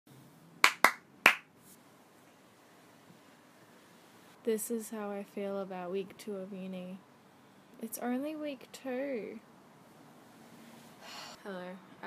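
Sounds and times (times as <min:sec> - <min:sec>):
hand claps: 0:00.6 - 0:01.5.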